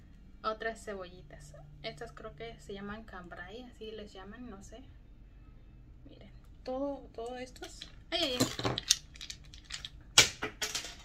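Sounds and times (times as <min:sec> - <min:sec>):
fridge magnets clattering together: 0:07.6 - 0:11.0.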